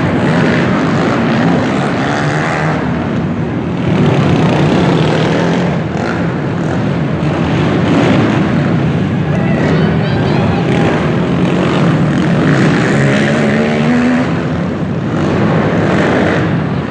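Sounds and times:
quad engines revving: 0:00.0 - 0:16.9.

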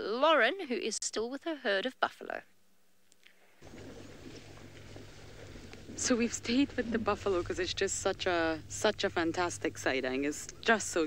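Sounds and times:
steady low hum: 0:03.5 - 0:11.0.

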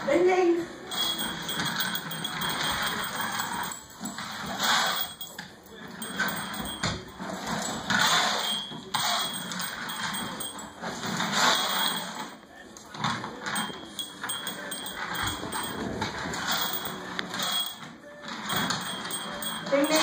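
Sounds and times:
toy skate wheels rolling on wood: 0:00.9 - 0:05.4, 0:06.0 - 0:12.4.

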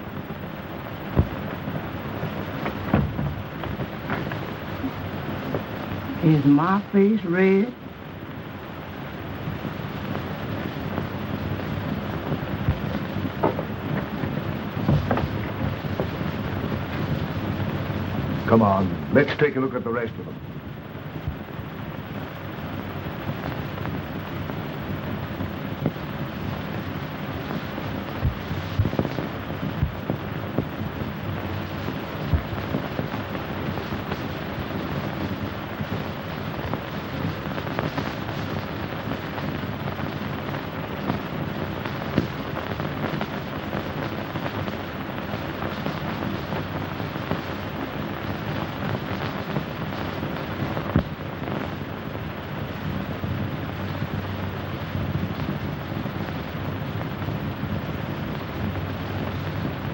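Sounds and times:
film soundtrack hiss and crackles: 0:00.0 - 0:59.9.

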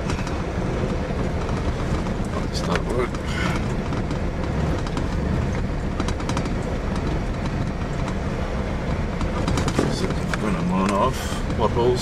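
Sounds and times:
knocks and rattles: 0:00.0 - 0:11.6
vehicle rumbling on gravel road: 0:00.0 - 0:12.0.

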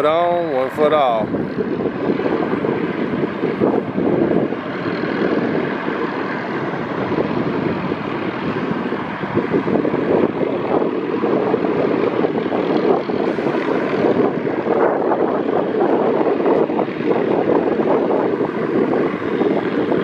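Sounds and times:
helicopter hovering: 0:00.0 - 0:20.0.

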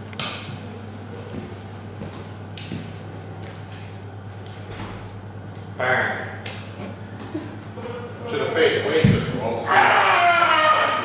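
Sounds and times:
low room hum: 0:00.0 - 0:11.0
faint footsteps and shuffles: 0:00.9 - 0:04.7.

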